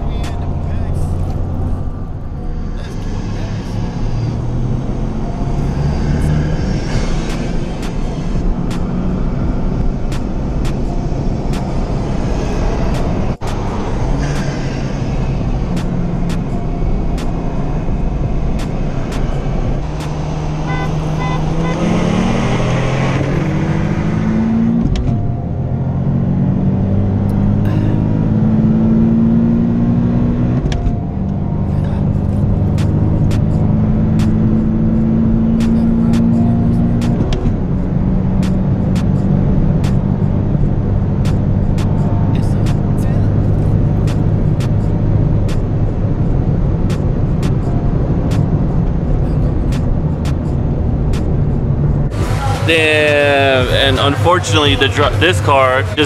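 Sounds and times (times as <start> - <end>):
car engine accelerating hard: 0.0 - 56.0.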